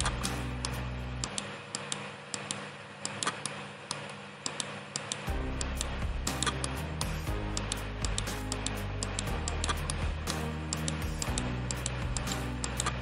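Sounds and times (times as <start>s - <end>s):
background music: 0.0s - 1.3s, 5.3s - 13.0s
rapid mouse clicks: 0.0s - 13.0s.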